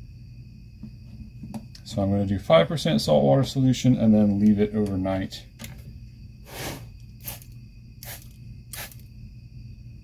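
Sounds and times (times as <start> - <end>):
spray bottle hissing sprays: 6.5 - 9.1.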